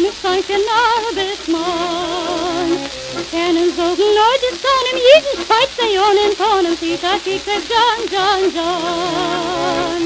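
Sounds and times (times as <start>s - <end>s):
record surface crackle and hiss: 0.0s - 10.0s
woman singing with vibrato: 0.0s - 10.0s.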